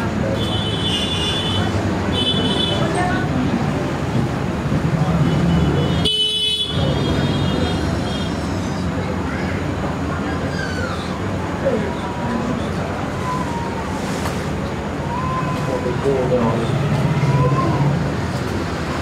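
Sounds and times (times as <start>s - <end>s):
indistinct voices: 6.8s - 19.0s.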